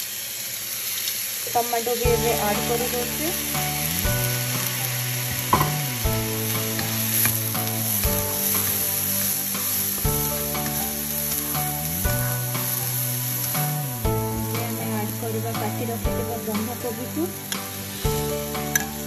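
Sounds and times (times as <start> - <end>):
vegetables sizzling in oil: 0.0 - 19.0
soft background music: 1.6 - 19.0.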